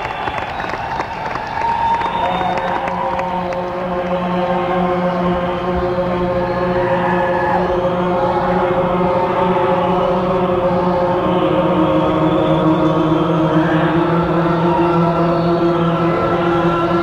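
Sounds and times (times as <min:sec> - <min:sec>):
audience cheering and clapping: 0:00.0 - 0:04.9.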